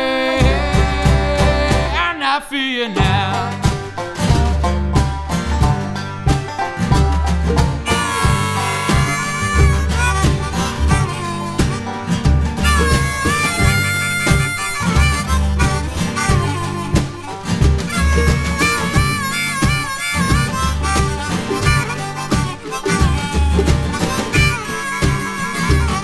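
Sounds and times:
harmonica playing lead: 0.0s - 2.0s, 6.3s - 26.0s
banjo and mandolin picking: 0.0s - 2.2s, 2.8s - 26.0s
upright bass and kick drum: 0.4s - 2.0s, 3.0s - 24.7s, 25.7s - 26.0s.

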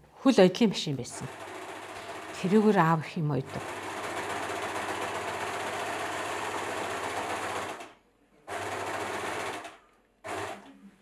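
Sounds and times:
electric sewing machine stitching: 1.1s - 10.7s.

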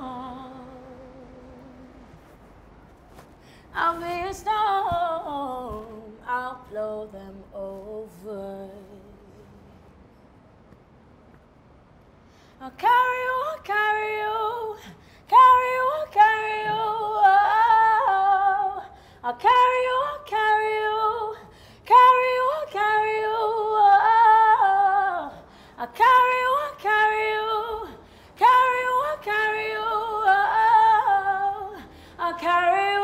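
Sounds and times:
woman singing a cappella: 0.0s - 2.1s, 3.7s - 9.8s, 12.6s - 33.0s.

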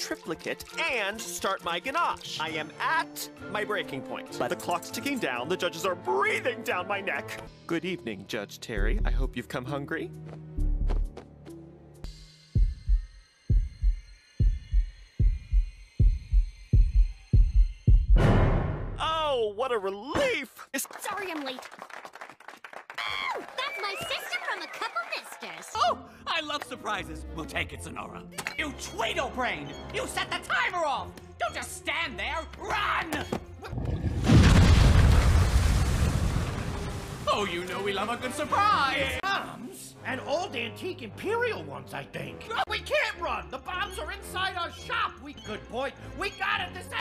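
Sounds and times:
cartoon heartbeat thumps: 12.6s - 19.0s
explosion boom: 18.2s - 19.0s, 33.8s - 37.3s.

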